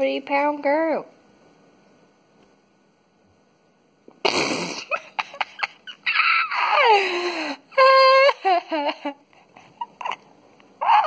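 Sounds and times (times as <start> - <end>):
high whine breaking into cries: 5.7 - 7.1.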